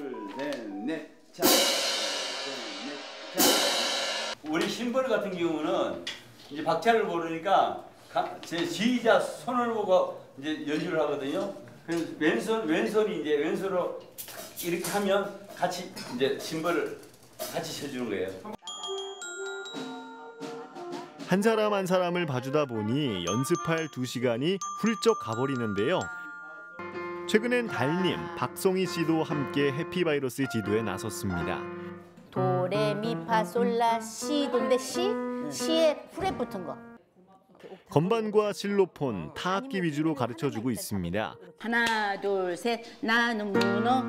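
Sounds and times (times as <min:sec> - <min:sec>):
crash cymbals struck together: 0:01.4 - 0:04.4
glockenspiel notes: 0:18.6 - 0:29.8.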